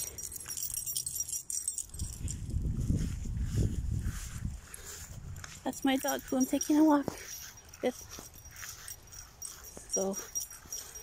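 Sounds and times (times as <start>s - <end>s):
small metal pieces jingling: 0.0s - 2.6s, 5.7s - 11.0s
microphone handling rumble: 1.9s - 5.4s.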